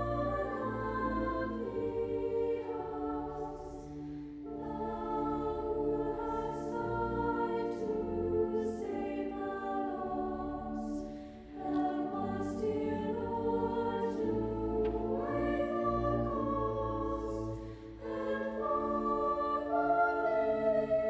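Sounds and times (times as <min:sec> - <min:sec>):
women's choir singing a hymn: 0:00.0 - 0:21.0.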